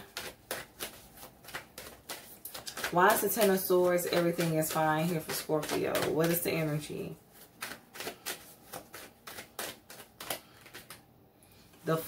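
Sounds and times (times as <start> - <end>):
cards being shuffled: 0.0 - 11.1.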